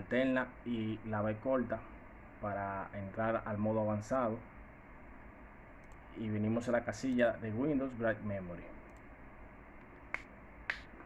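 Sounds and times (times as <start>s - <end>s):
low steady hiss: 0.0s - 11.0s
computer mouse clicks: 5.8s - 6.1s.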